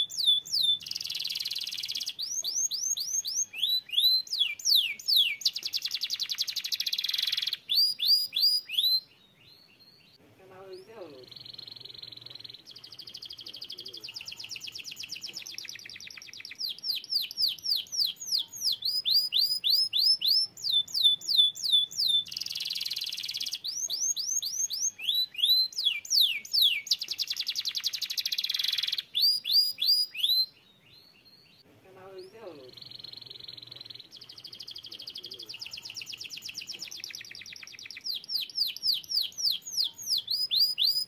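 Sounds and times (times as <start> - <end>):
canary singing: 0.0 - 41.0.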